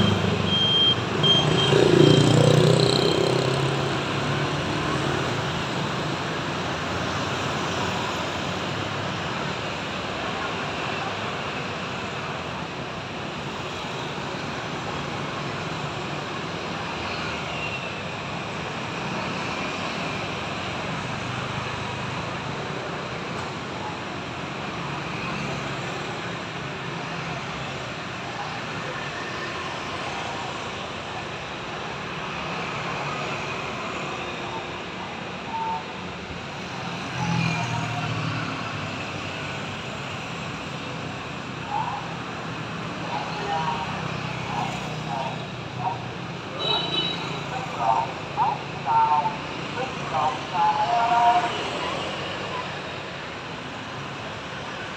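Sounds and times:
motorbikes and scooters passing: 0:00.0 - 0:08.1
faint voices: 0:41.2 - 0:46.6, 0:47.2 - 0:53.0.

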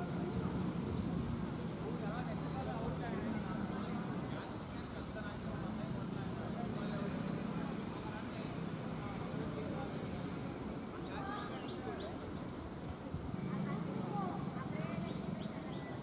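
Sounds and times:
faint indistinct voices: 0:00.0 - 0:16.0.

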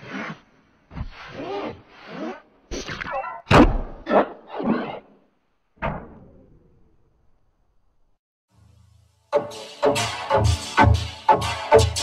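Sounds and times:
sharp thunks: 0:03.5 - 0:04.1.

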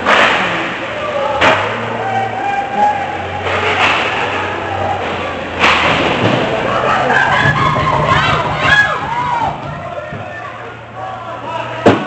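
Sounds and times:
spectators' voices: 0:00.0 - 0:12.0.

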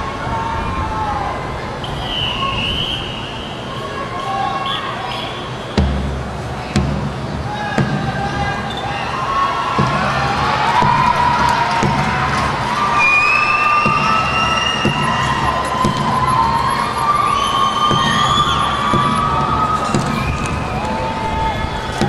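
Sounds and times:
stadium crowd cheering: 0:00.0 - 0:22.0
sliding whistle tones: 0:01.8 - 0:03.9, 0:12.8 - 0:22.0
low thump: 0:05.8 - 0:08.6, 0:09.8 - 0:12.7, 0:13.8 - 0:16.6, 0:17.9 - 0:20.7.

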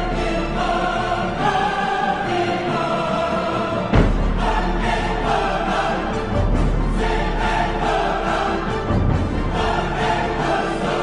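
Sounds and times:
choir singing held notes: 0:00.0 - 0:11.0
instrumental accompaniment: 0:00.1 - 0:11.0.

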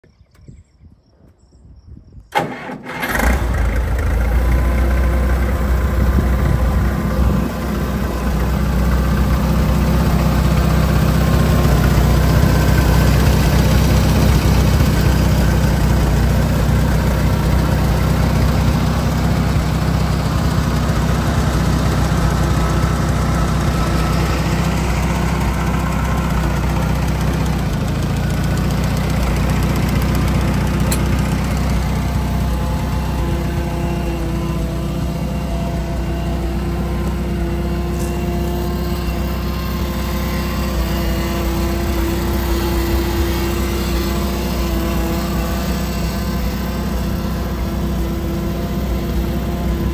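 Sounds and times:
tractor engine cranking and idling: 0:02.2 - 0:49.9.

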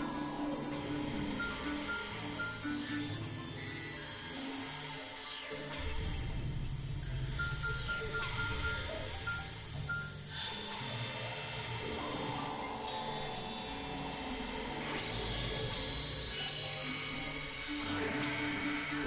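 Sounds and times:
experimental synthesizer drones: 0:00.0 - 0:19.0.

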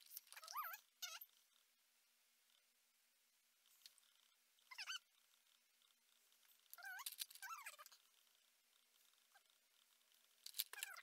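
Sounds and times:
high-pitched wavering animal calls: 0:04.7 - 0:05.1.

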